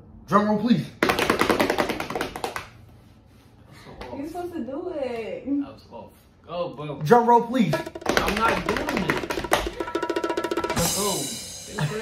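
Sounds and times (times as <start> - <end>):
hands drumming a drum roll: 7.7 - 11.2.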